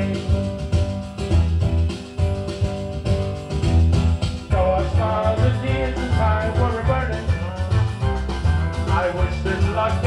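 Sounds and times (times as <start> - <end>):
instrumental backing music: 0.0 - 10.0.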